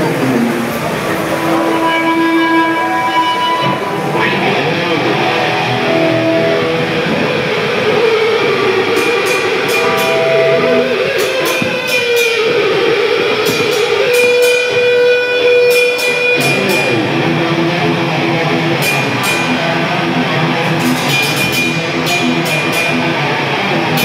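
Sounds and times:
distorted electric guitar: 0:00.0 - 0:24.0.

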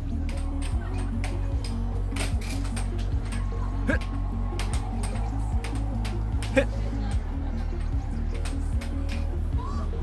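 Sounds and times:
background music with bass: 0:00.0 - 0:10.0
air hockey puck clacks: 0:04.6 - 0:06.6.

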